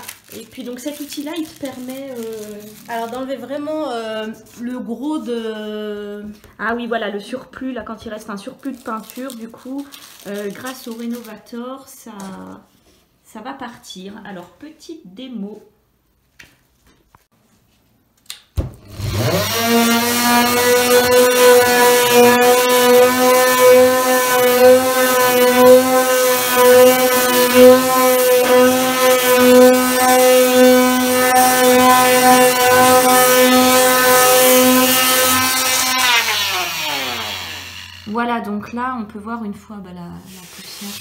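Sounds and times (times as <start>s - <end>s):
oscillating multi-tool sanding: 19.0s - 38.3s.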